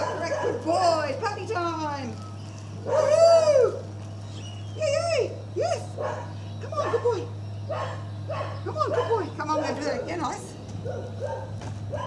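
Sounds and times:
small dog yelping: 0:00.0 - 0:00.7, 0:02.8 - 0:03.8, 0:05.8 - 0:12.0.

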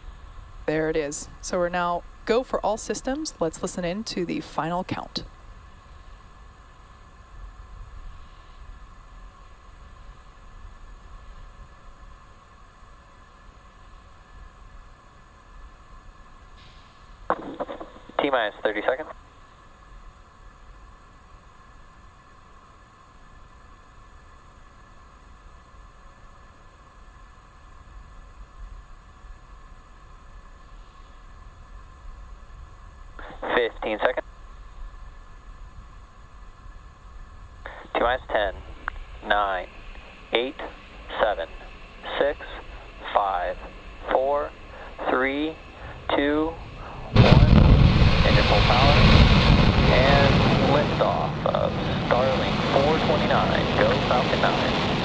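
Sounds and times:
rocket engines roaring: 0:37.6 - 0:55.0.

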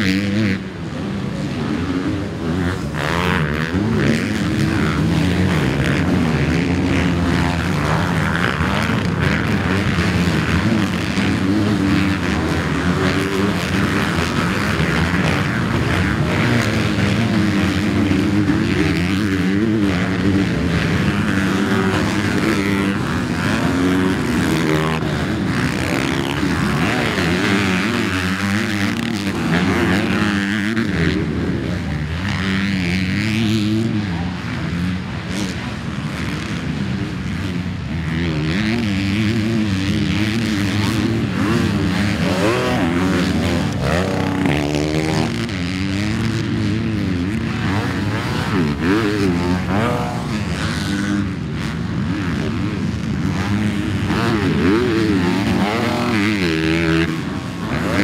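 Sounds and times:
motocross bike engines revving: 0:00.0 - 0:58.0.

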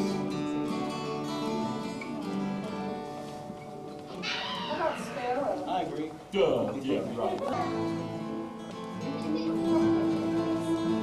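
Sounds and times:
acoustic guitars playing: 0:00.0 - 0:11.0.

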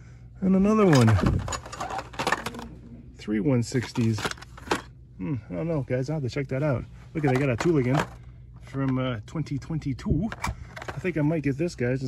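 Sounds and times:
plastic and cardboard packages rattling: 0:00.8 - 0:02.8, 0:03.6 - 0:04.9, 0:07.2 - 0:08.9, 0:10.2 - 0:11.2.

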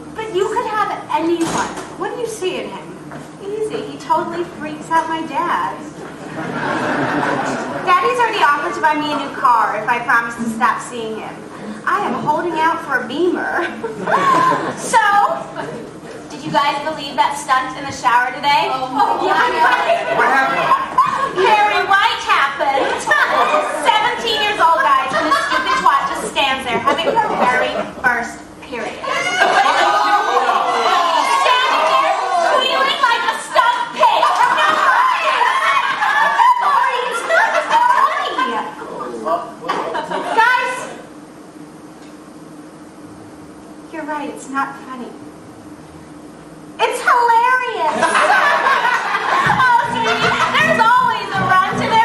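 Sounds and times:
young voices laughing and snickering: 0:06.1 - 0:07.9, 0:13.6 - 0:15.9, 0:19.0 - 0:21.9, 0:22.6 - 0:28.0, 0:29.0 - 0:40.8, 0:47.8 - 0:51.8
woman talking with a chuckle: 0:13.5 - 0:15.8, 0:24.6 - 0:28.2, 0:47.8 - 0:52.0.

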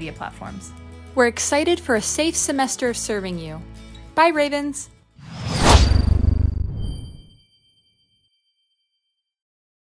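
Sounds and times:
whoosh: 0:05.2 - 0:07.4
deep low rumble: 0:05.3 - 0:07.2
thin high ringing tone: 0:06.4 - 0:08.9.

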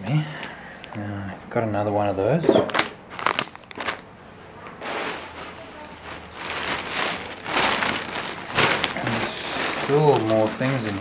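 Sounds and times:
plastic packets crinkling: 0:02.7 - 0:04.2, 0:04.9 - 0:11.0.

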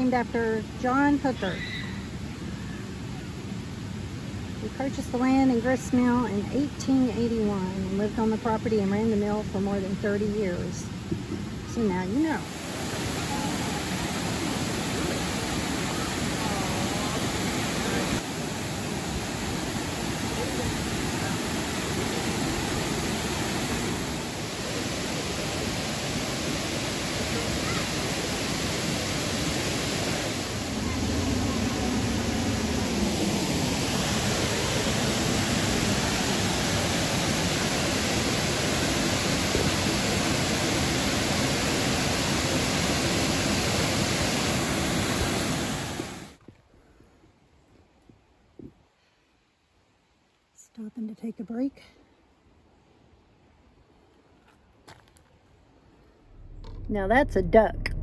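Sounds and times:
waterfall rushing: 0:11.9 - 0:46.4.

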